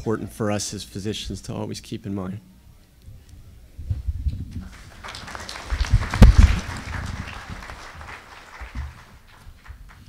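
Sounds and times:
microphone handling thumps: 3.8 - 4.6, 5.9 - 7.2
audience applauding: 4.6 - 10.0.

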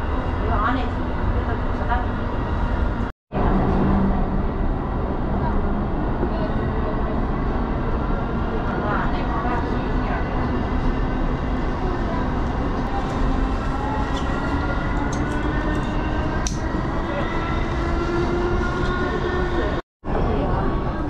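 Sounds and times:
monorail running rumble: 0.0 - 21.0.

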